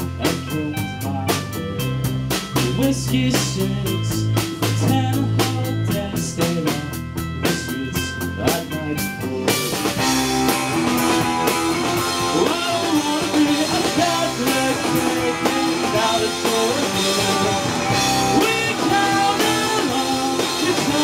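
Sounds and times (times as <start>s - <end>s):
drum kit beat: 0.0s - 21.0s
electric guitar bending notes: 0.0s - 21.0s
keyboard: 0.0s - 21.0s.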